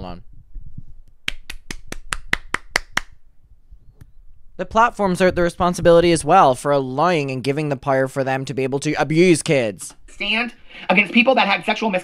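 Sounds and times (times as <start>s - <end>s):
person clapping hands: 1.3s - 3.2s.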